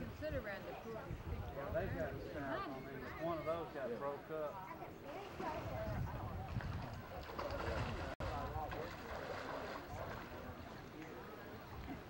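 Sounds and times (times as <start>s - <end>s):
wind buffeting microphone: 0.0s - 2.6s, 5.1s - 10.4s.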